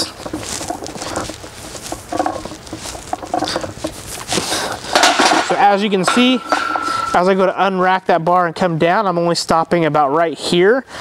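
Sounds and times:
person breathing: 4.3s - 4.9s
barbell clanking on rack: 4.9s - 7.4s.

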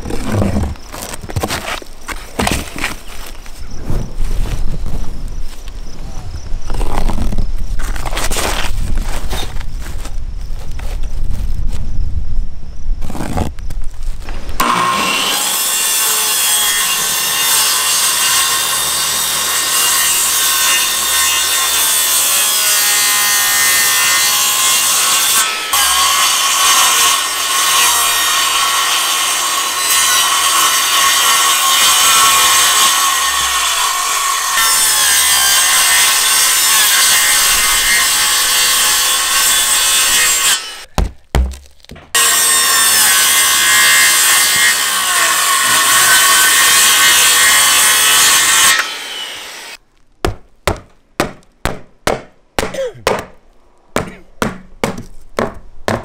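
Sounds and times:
circular saw cutting wood: 14.6s - 40.9s, 42.2s - 49.8s.

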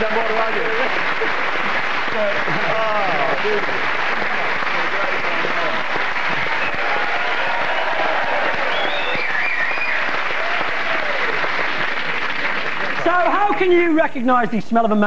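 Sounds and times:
audience applauding: 0.0s - 13.9s.

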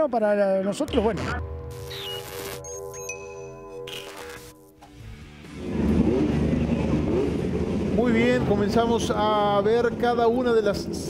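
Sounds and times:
short musical sting: 0.9s - 6.5s
race car engines running: 5.1s - 11.0s.

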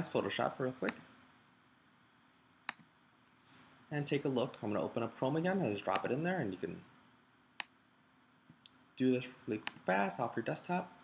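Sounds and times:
computer mouse click: 2.6s - 3.4s, 7.6s - 8.8s.

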